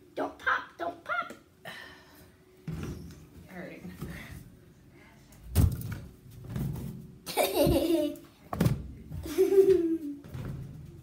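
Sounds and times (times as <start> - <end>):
girl laughing: 7.3 - 8.2, 9.2 - 10.2.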